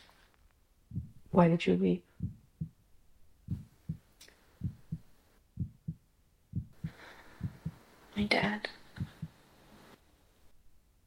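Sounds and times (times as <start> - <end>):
heartbeat thumps: 0.8 - 1.4, 2.1 - 7.9, 8.8 - 9.4.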